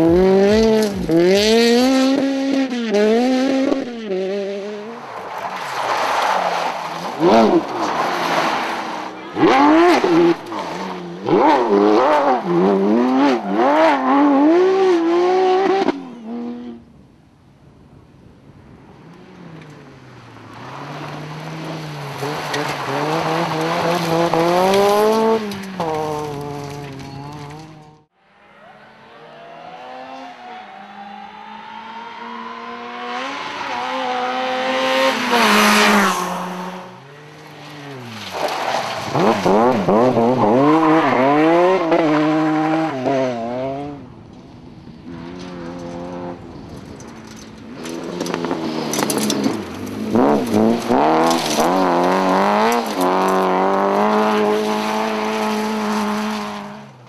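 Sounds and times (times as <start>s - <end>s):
rally car engine revving: 0.0s - 16.8s, 19.0s - 44.2s, 44.9s - 57.0s
rally cars passing by: 0.0s - 16.9s, 18.5s - 57.0s.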